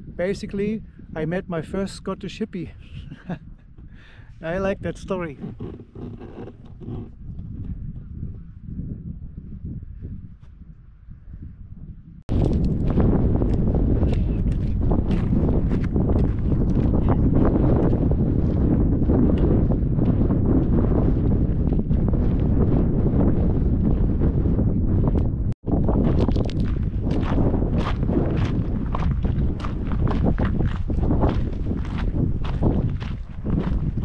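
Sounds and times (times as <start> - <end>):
wind buffeting microphone: 0.0 - 34.0
footsteps crunching on gravel: 14.2 - 17.0, 25.7 - 34.0.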